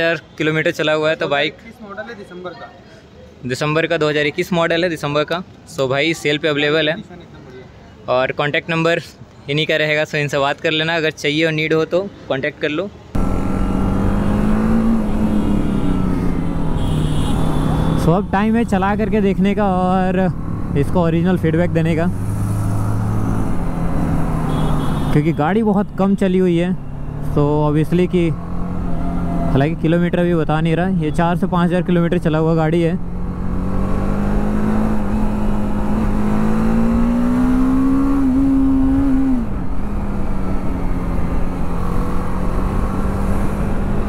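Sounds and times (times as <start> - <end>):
road noise: 0.0 - 44.0.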